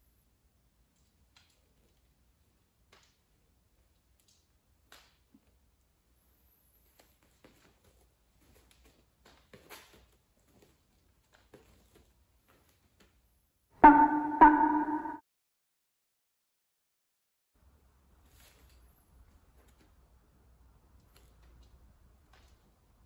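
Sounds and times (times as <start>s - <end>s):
bell-like chime: 13.8s - 15.2s.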